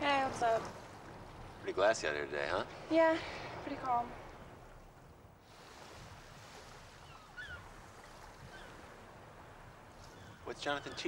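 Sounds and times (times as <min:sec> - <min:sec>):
soft water hiss: 0:00.0 - 0:11.0.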